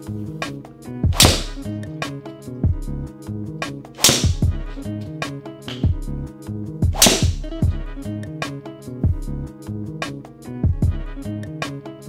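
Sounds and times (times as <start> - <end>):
background music with beat: 0.0 - 12.0
golf club striking ball: 1.2 - 1.7, 4.0 - 4.6, 7.0 - 7.5.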